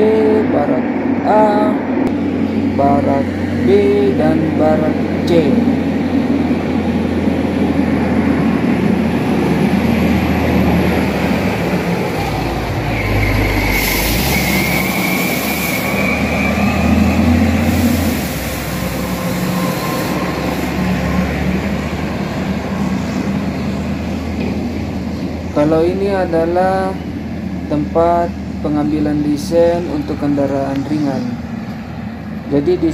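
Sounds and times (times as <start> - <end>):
diesel trucks rumbling past: 0.0 - 32.9
high squeal: 12.0 - 24.4
hissing bursts: 12.1 - 21.5.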